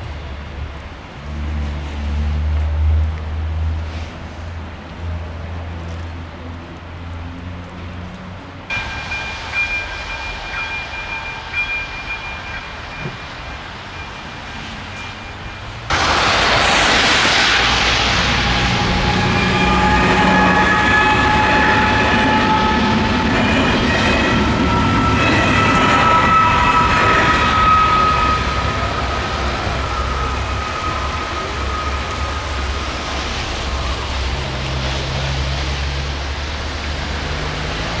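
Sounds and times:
passenger train rumbling past: 0.0s - 38.0s
high wavering train tones: 8.7s - 36.6s.

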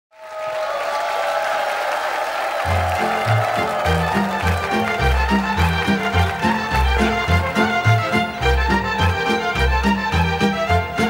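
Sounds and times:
large audience clapping: 0.1s - 11.0s.

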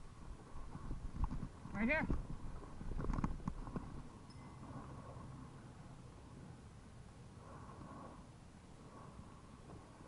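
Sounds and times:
riding over rough dirt trail: 0.0s - 5.7s.

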